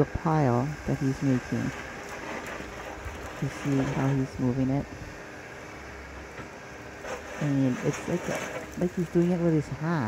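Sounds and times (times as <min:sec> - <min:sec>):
distant diesel engine rumble: 0:00.0 - 0:10.0.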